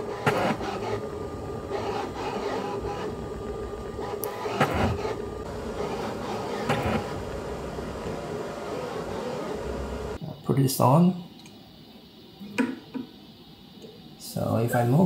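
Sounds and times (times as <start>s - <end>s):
stepper motors whining: 0.0s - 10.2s
fan hiss: 0.0s - 15.0s.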